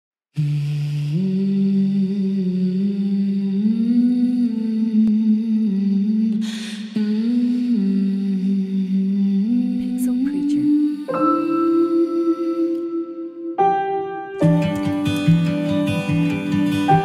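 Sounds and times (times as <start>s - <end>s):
person humming slow melody: 0.4s - 17.0s.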